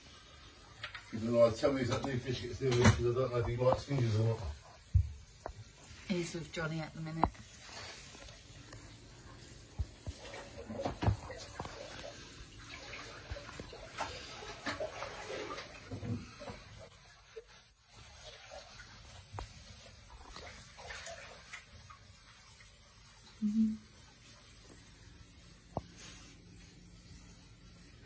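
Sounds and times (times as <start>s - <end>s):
faint running water: 0.0s - 28.0s.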